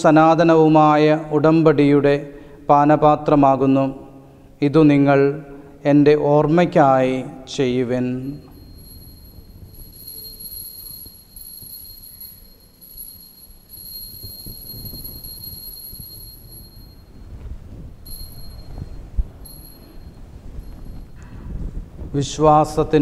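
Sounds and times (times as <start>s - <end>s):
altar bell ringing: 8.2s - 17.4s, 18.0s - 21.2s.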